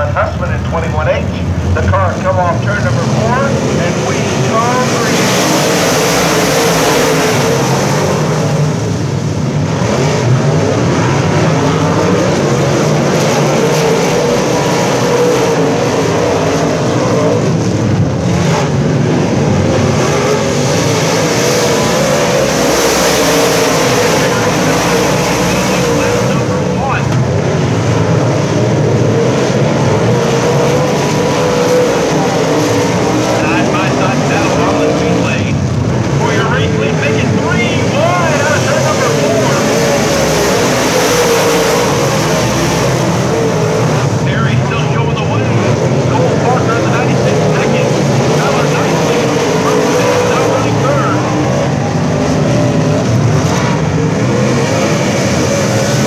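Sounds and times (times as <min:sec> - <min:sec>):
race car engines: 0:00.0 - 0:56.0.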